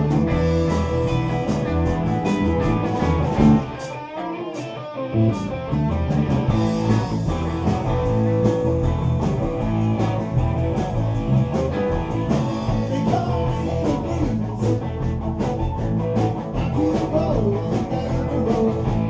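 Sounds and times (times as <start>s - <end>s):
blues-rock band playing: 0.0s - 19.0s.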